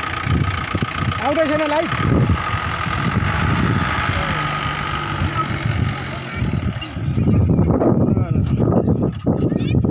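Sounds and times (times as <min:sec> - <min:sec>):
pickup truck engine droning: 0:00.0 - 0:09.5.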